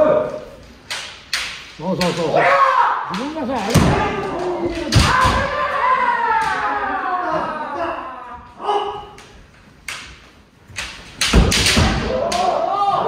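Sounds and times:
people shouting: 1.9s - 9.3s, 11.4s - 13.0s
bamboo sword strike: 11.2s - 12.6s.

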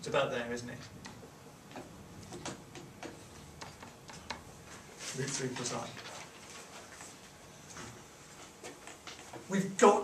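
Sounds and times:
stylus tapping on whiteboard: 1.0s - 4.5s.

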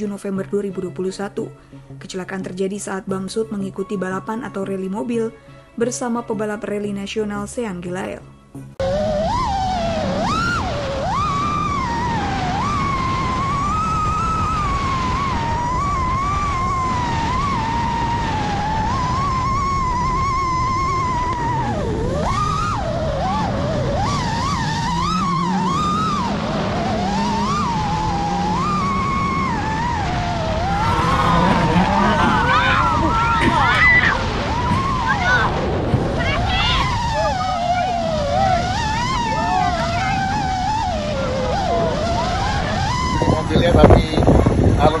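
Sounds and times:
drone motors whining: 8.8s - 44.7s
low rumble: 25.8s - 44.7s.

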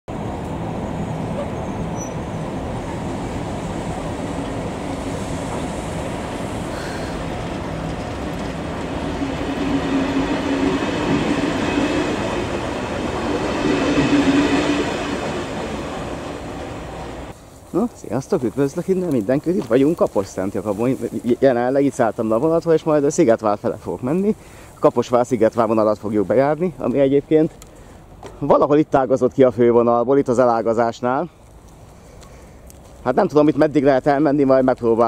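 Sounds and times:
train wheels rolling on rail: 0.1s - 28.6s, 31.4s - 35.0s.

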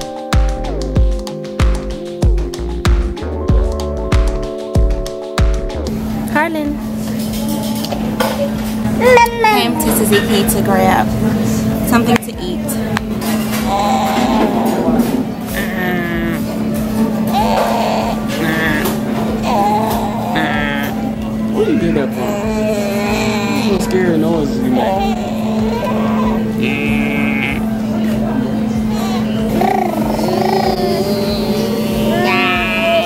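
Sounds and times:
steady background hum: 0.0s - 33.0s
indistinct voices: 6.8s - 33.0s
baby making playful noises: 28.9s - 33.0s
baby squealing: 28.9s - 33.0s.

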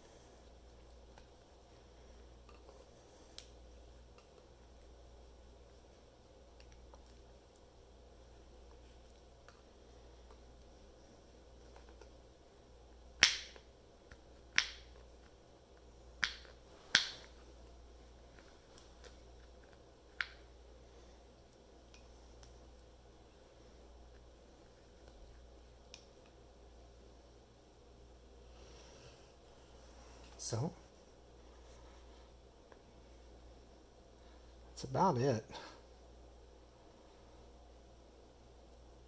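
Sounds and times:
faint handling rustle: 28.5s - 33.4s.

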